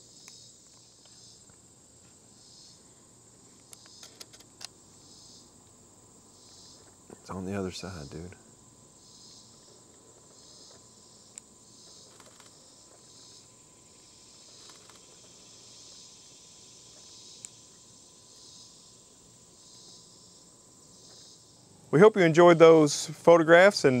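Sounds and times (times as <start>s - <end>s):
insect chorus buzzing: 0.0s - 24.0s.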